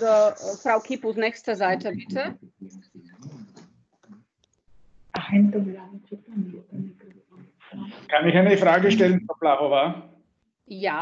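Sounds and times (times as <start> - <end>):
low muffled murmur: 1.8 - 4.2.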